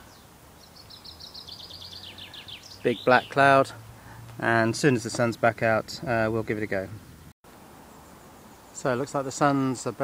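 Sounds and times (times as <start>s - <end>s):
songbird trilling: 0.0s - 3.5s.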